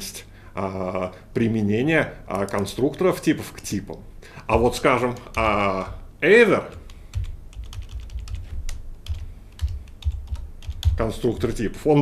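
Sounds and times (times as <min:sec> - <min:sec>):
keyboard typing: 0:04.5 - 0:06.0, 0:06.7 - 0:11.7.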